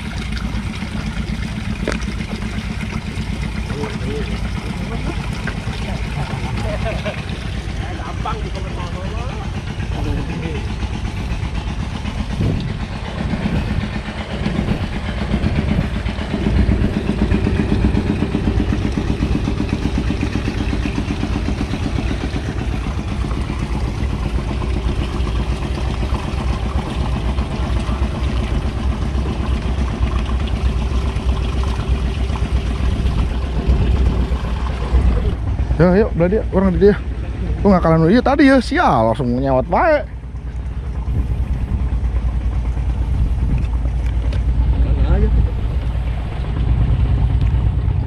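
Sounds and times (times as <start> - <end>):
small engine running: 0.0 - 48.0.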